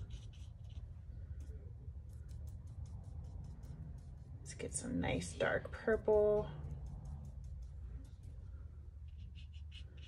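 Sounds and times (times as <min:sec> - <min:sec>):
paintbrush dabbing on paper: 0:00.0 - 0:04.7, 0:06.7 - 0:10.0
low steady hum: 0:00.0 - 0:10.0.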